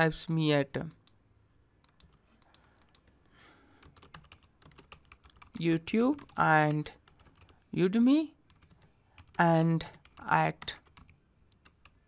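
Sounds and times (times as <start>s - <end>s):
faint keyboard typing: 1.8s - 12.0s.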